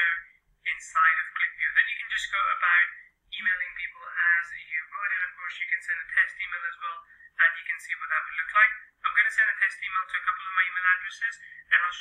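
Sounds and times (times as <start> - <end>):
person talking over telephone: 0.0 - 12.0.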